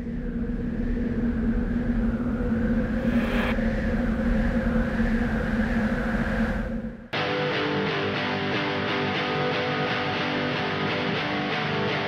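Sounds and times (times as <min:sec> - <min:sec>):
rushing swell: 0:00.0 - 0:07.1
low drone with hum: 0:00.0 - 0:07.2.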